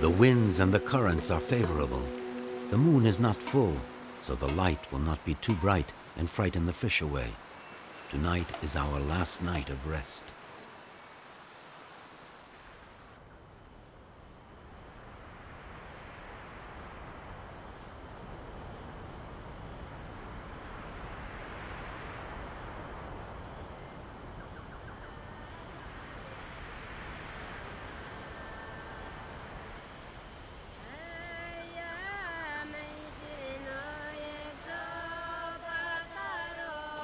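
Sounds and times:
insects trilling: 0:00.0 - 0:37.0
soft rushing background noise: 0:00.0 - 0:37.0.

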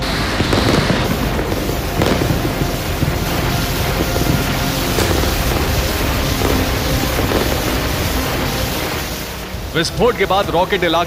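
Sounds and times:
explosions crackling and popping: 0:00.0 - 0:10.1
music: 0:00.0 - 0:11.0.

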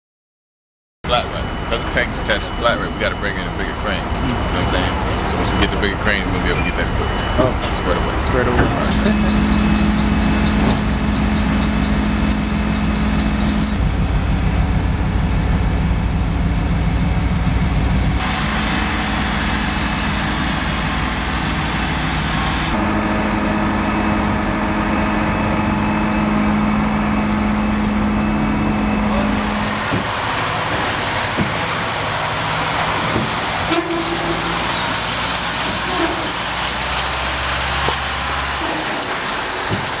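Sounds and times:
diesel machinery humming: 0:01.1 - 0:39.7
sharp metal clanks: 0:08.6 - 0:13.8.

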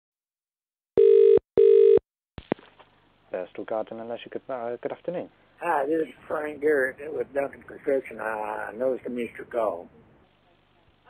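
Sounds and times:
telephone ringback tone: 0:01.0 - 0:02.0.

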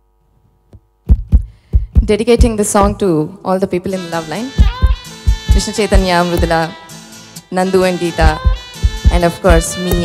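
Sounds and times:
heartbeat thumps: 0:01.0 - 0:03.0, 0:04.6 - 0:06.6, 0:08.2 - 0:10.0.

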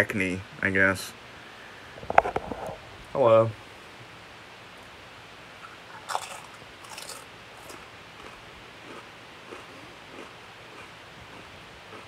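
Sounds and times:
chewing: 0:05.6 - 0:12.0
tortilla chip crunching: 0:05.9 - 0:12.0.

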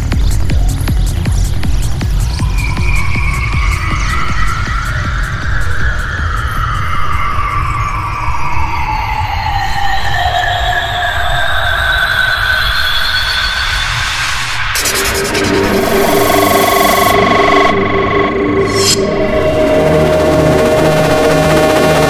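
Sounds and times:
rolling bass line: 0:00.0 - 0:05.8, 0:14.8 - 0:22.0
gliding synth sweeps: 0:14.5 - 0:22.0.

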